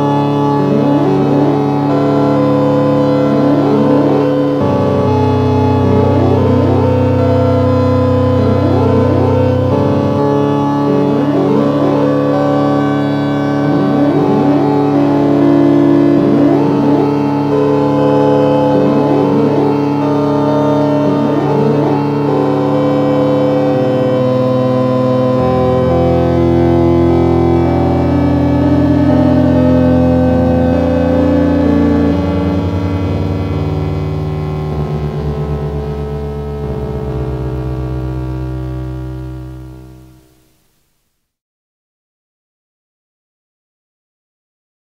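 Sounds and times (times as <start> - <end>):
sustained synthesizer chords: 0.0 - 40.6
short sliding synth notes: 23.2 - 40.5.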